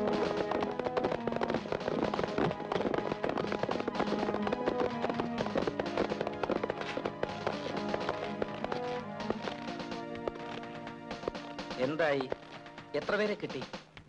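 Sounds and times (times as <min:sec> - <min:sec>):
tense film score: 0:00.0 - 0:13.8
rapid percussive hits: 0:00.0 - 0:14.0.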